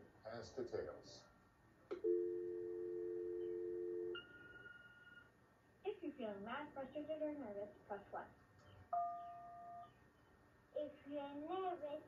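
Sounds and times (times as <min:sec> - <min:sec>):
high single beep: 0:09.0 - 0:09.9.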